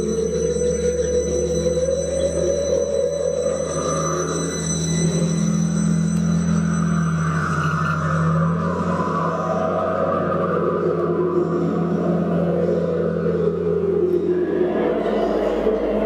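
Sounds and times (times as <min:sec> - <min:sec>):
thin high tones: 0:00.0 - 0:09.7
low electronic hum: 0:00.0 - 0:16.0.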